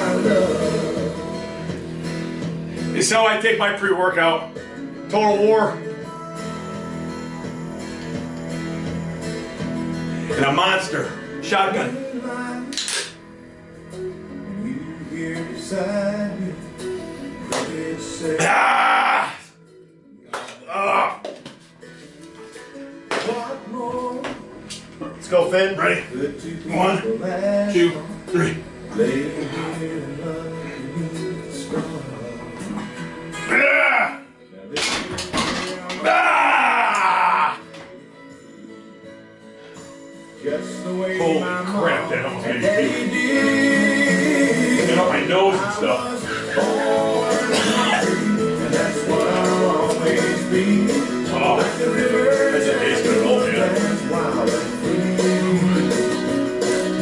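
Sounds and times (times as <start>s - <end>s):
country music with guitar: 0.0s - 18.4s, 21.2s - 36.1s, 37.5s - 57.0s
can cracking open hiss-pop: 12.7s - 13.2s
man yelling with strain: 18.4s - 19.5s, 20.7s - 21.2s, 33.4s - 34.3s, 36.0s - 37.6s.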